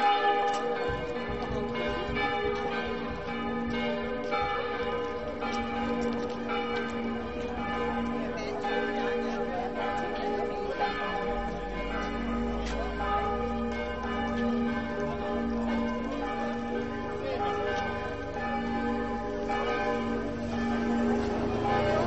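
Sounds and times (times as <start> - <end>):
church bells ringing: 0.0 - 22.0.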